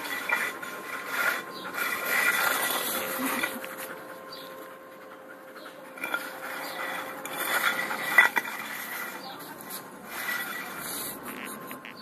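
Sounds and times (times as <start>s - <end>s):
tile scraping on concrete: 0.0s - 4.0s, 5.9s - 11.9s.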